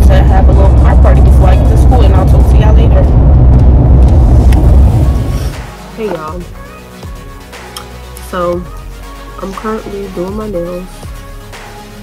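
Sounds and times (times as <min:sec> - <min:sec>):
woman speaking: 0:00.0 - 0:03.2, 0:05.9 - 0:06.6, 0:08.2 - 0:08.8, 0:09.4 - 0:10.9
car cabin rumble: 0:00.0 - 0:06.5.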